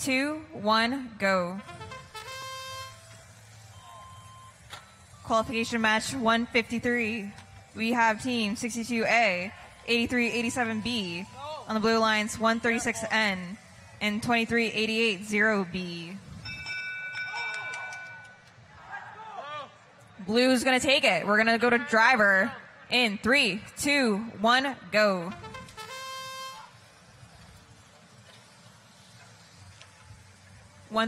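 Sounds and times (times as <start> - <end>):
faint steady tone: 1.9 - 14.0.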